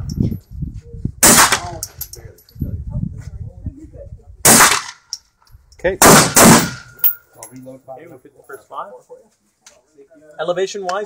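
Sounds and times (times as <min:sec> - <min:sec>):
gunshot: 0:01.2 - 0:01.8, 0:04.4 - 0:05.0, 0:06.0 - 0:07.0.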